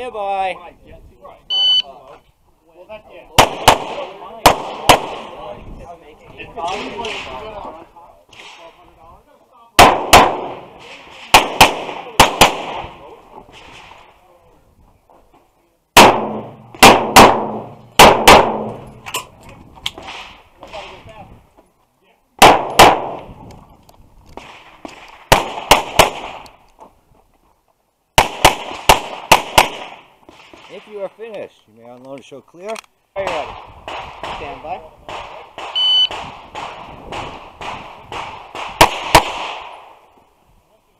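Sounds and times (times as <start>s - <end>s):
pistol shots with ringing echo: 3.3s - 5.5s, 9.8s - 13.0s, 16.0s - 19.0s, 22.4s - 23.3s, 24.4s - 26.4s, 28.2s - 30.0s, 33.3s - 40.0s.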